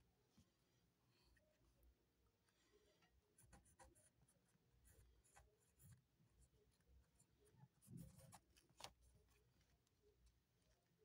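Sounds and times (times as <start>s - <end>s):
pen scratching on paper: 3.3s - 9.0s.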